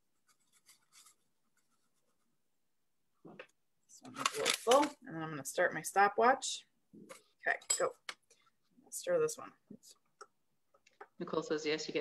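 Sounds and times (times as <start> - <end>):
person speaking: 3.9 - 8.1.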